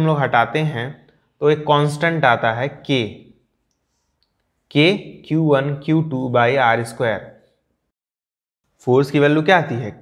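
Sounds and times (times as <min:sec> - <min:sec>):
man speaking: 0:00.0 - 0:03.4, 0:04.7 - 0:07.4, 0:08.8 - 0:10.0.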